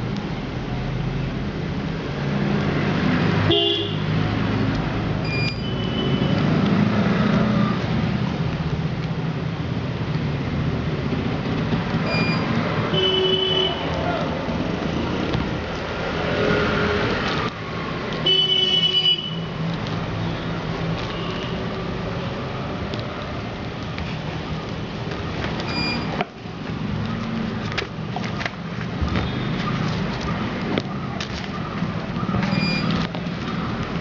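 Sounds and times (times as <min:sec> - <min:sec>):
road traffic: 0:00.0 - 0:34.0.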